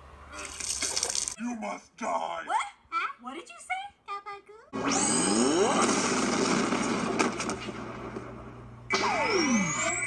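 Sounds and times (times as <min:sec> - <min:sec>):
crackling electrical energy: 0:05.4 - 0:08.6
sharp cracks: 0:05.8 - 0:09.1.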